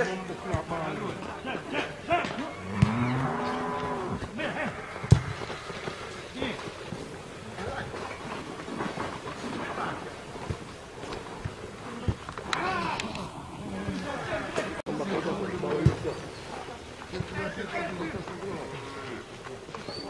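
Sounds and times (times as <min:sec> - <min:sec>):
cow mooing: 0:02.5 - 0:04.2.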